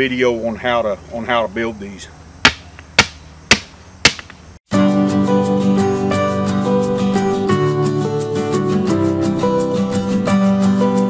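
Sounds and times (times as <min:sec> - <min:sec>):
sharp hammer blows: 0:02.4 - 0:04.4.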